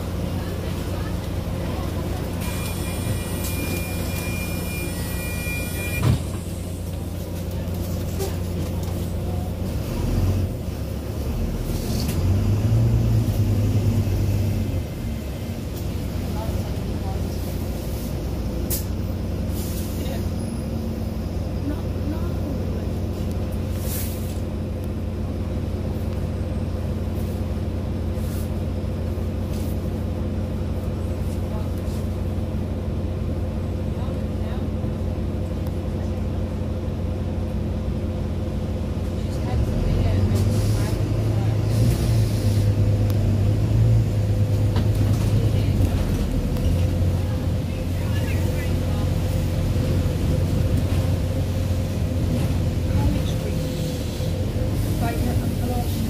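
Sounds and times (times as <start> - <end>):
bus engine hum: 0.0 - 56.0.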